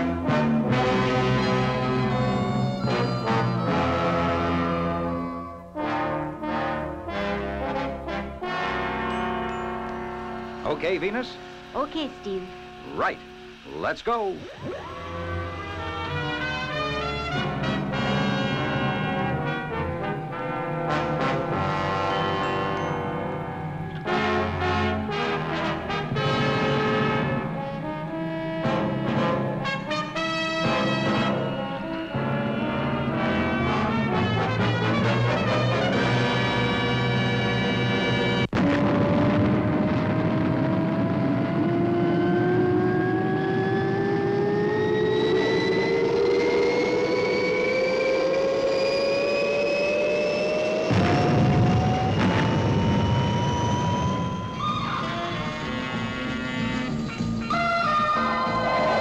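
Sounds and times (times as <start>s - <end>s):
orchestral music with brass: 0.0s - 14.0s, 14.8s - 39.6s, 54.0s - 59.0s
rocket launch whine and roar: 38.4s - 57.0s.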